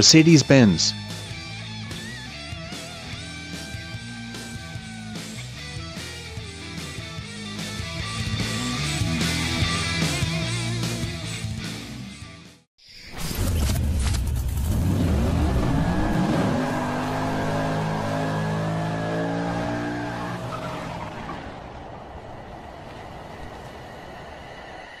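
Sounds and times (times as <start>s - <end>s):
car engine revving: 0.9s - 11.4s, 13.6s - 22.3s.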